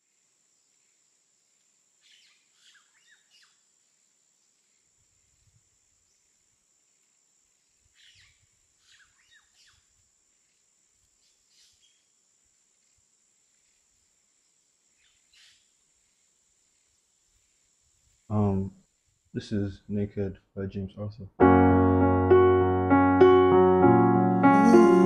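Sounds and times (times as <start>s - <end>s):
faint bird chirping: 0.0s - 19.3s.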